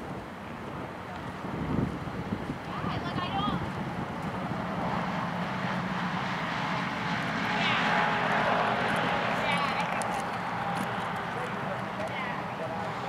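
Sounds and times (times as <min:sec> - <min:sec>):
voices: 0:02.6 - 0:03.7, 0:07.4 - 0:13.0
engine drone: 0:03.0 - 0:13.0.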